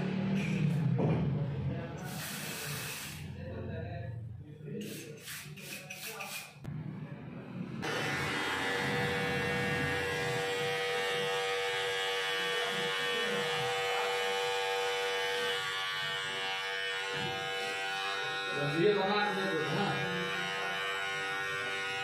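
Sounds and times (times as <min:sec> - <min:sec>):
electric beard trimmer buzzing: 0:07.8 - 0:22.0.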